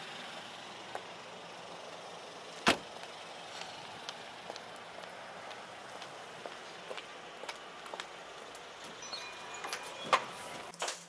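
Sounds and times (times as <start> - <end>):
steady outdoor hiss: 0.0 - 11.0.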